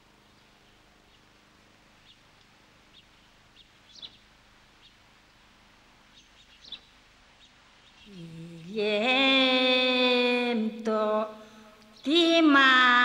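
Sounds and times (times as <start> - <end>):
faint low hum: 0.0 - 13.0
bird chirps: 2.9 - 5.0, 6.1 - 8.3.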